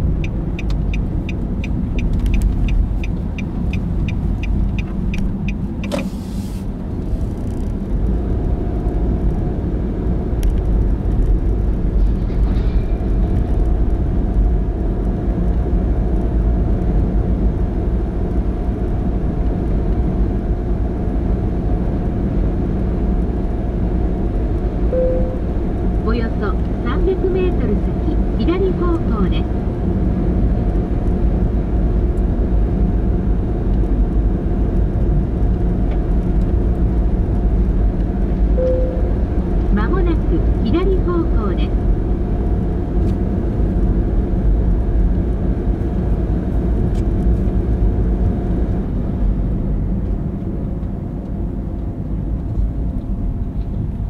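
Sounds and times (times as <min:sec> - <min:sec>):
car road and engine rumble: 0:00.0 - 0:54.0
short beep: 0:24.9 - 0:25.5, 0:38.6 - 0:39.2.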